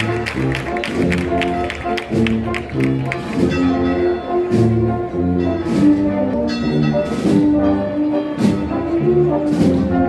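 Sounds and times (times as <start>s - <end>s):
wind band playing slow march: 0.0s - 10.0s.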